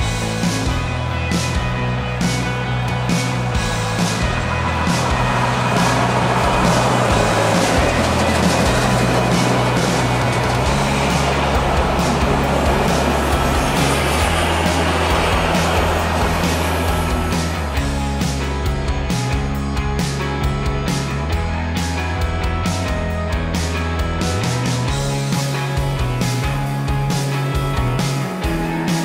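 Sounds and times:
steam train passing: 0.0s - 18.7s
rock music with steady beat: 0.0s - 29.0s.

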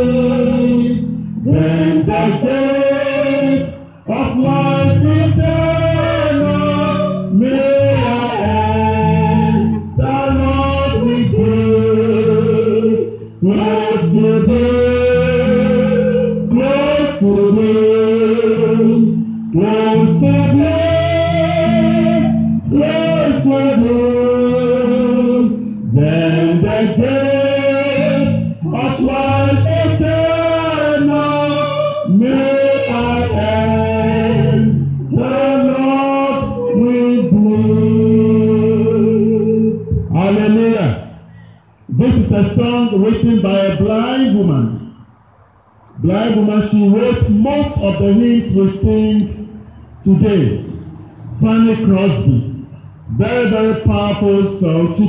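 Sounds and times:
electric bass line: 0.0s - 41.2s
two people singing a hymn: 0.0s - 44.9s, 45.9s - 55.0s.

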